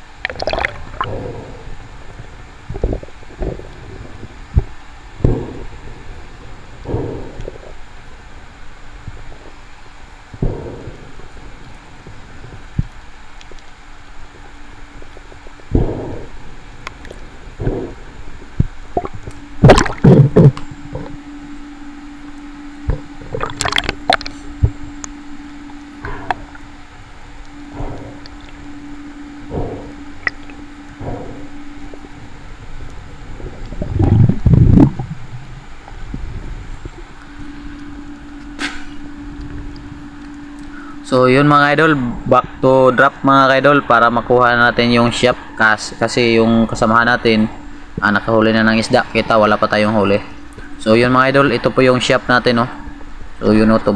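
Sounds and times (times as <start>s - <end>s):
rumbling water slosh: 0.0s - 21.2s, 22.2s - 40.6s
faint steady hum: 0.0s - 53.9s
water splashing: 0.2s - 1.6s, 15.1s - 21.2s, 22.9s - 24.8s, 29.5s - 37.8s
muffled underwater thumps and sloshing: 0.2s - 9.7s, 10.3s - 13.6s, 14.3s - 21.2s, 22.8s - 40.2s.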